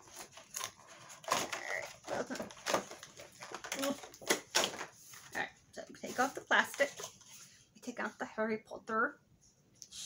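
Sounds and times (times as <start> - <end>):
plastic wrapping crinkling: 0.0 - 7.6.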